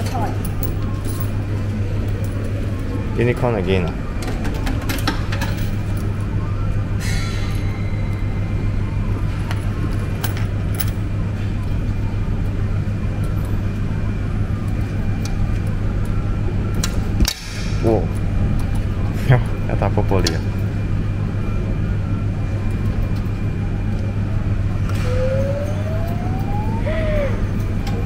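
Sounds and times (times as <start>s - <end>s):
arcade background hum: 0.0s - 28.0s.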